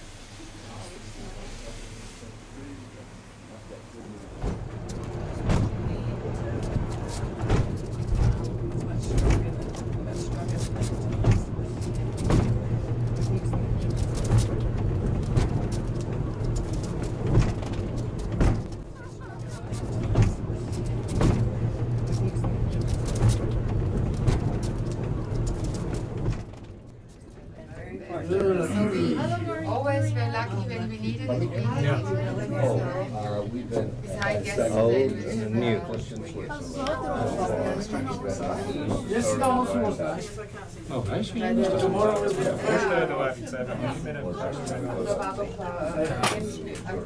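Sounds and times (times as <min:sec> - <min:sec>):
funicular car humming: 0:00.0 - 0:47.0
regular knocking of track: 0:04.4 - 0:27.2.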